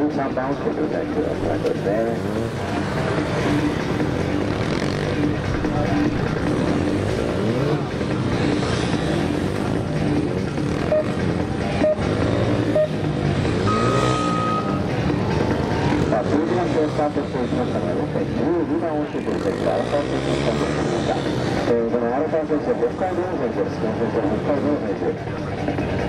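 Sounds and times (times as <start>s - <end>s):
motorcycle engine revving: 0.0s - 26.0s
short steady high tone: 13.6s - 14.9s.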